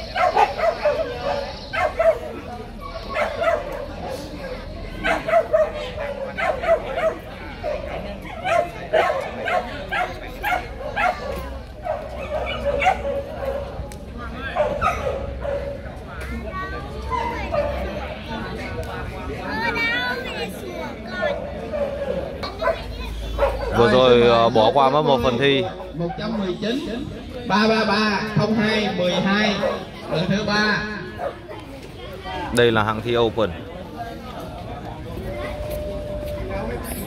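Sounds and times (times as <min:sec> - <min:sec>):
dogs barking and yipping: 0:00.0 - 0:04.2, 0:04.9 - 0:16.0, 0:17.0 - 0:18.2, 0:21.1 - 0:24.3, 0:25.9 - 0:26.6, 0:29.3 - 0:31.6.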